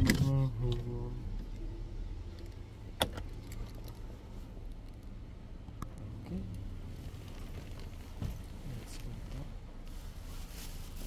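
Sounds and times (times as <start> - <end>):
car engine rumbling: 0.0 - 11.0.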